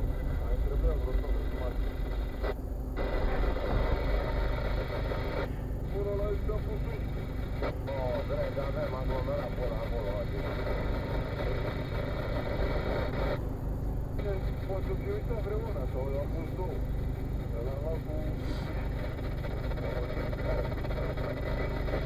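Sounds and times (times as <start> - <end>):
car engine idling: 0.0 - 22.0
faint talking voice: 5.9 - 12.0.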